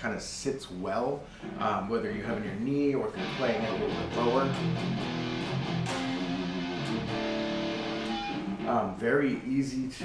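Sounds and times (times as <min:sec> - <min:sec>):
electric guitar chords through amp: 0:03.1 - 0:09.0.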